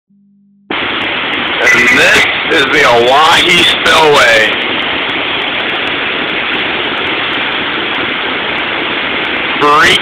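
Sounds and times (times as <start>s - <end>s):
floodwater rushing through spillway: 0.7s - 10.0s.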